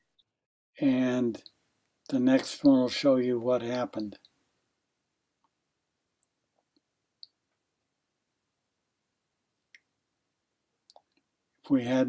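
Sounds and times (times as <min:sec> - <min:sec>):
man speaking: 0:00.8 - 0:01.5, 0:02.1 - 0:04.2, 0:11.7 - 0:12.0.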